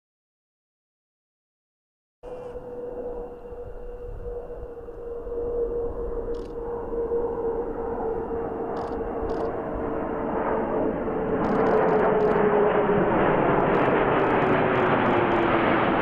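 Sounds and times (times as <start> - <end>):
fighter jets flying overhead: 2.2 - 16.0.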